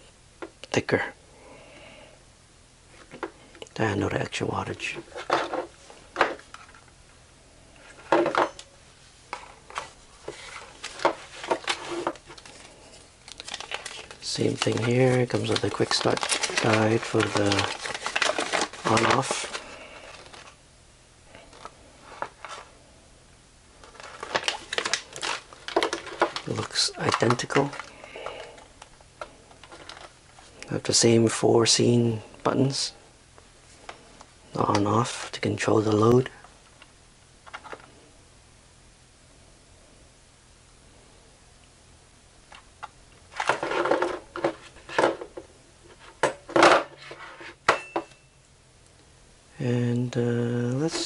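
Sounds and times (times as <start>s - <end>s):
plastic crinkling and clicking: 9.3s - 20.6s, 21.5s - 22.7s, 23.8s - 30.7s, 36.6s - 38.0s
paper rustling: 9.7s - 20.6s, 23.8s - 30.6s.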